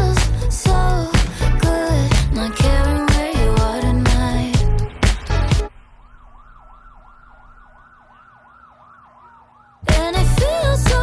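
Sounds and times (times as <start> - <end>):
pop song: 0.0 - 5.7, 9.8 - 11.0
emergency siren yelping: 4.5 - 10.7
siren wail: 4.5 - 10.7.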